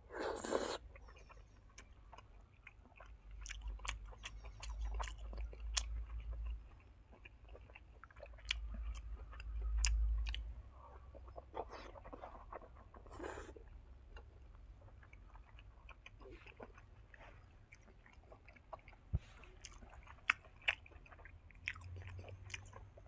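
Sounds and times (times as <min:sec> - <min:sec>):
wet chewing: 0:00.2 - 0:23.0.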